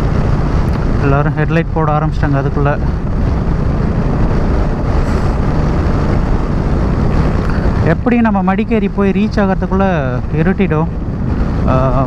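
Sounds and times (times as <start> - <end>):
motorcycle engine and road rumble: 0.0 - 12.0
wind rush over microphone: 0.0 - 12.0.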